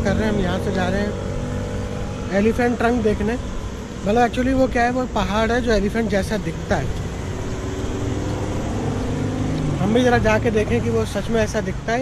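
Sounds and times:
man talking: 0.0 - 1.2, 2.2 - 3.4, 4.0 - 7.0, 9.7 - 12.0
road traffic rumble: 0.0 - 12.0.

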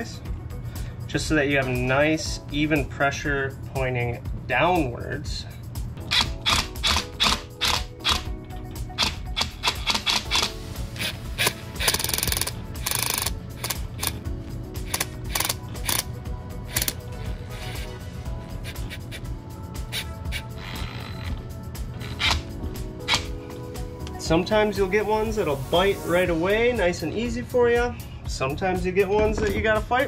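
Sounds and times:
background music with beat: 0.0 - 30.0.

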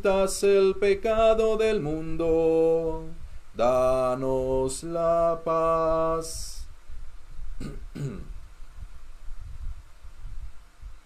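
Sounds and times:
man clearing throat: 7.6 - 8.4.

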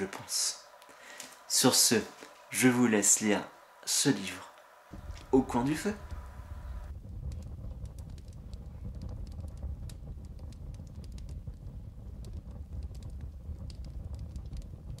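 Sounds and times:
fire low rumble: 0.0 - 15.0
fire pops and snaps: 4.6 - 15.0.

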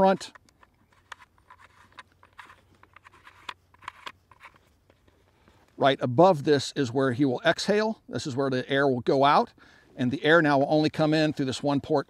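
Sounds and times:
port cover scraping and ticking: 0.0 - 5.2
man's voice: 5.8 - 12.0.

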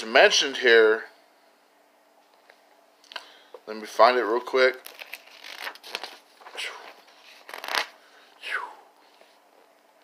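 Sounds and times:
paper pages rustling: 4.7 - 8.0.

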